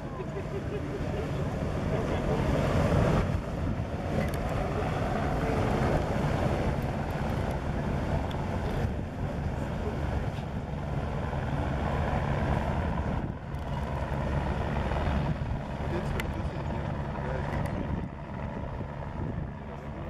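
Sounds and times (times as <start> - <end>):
boat engine droning: 0.0 - 20.0
water noise: 0.0 - 20.0
wind: 0.0 - 20.0.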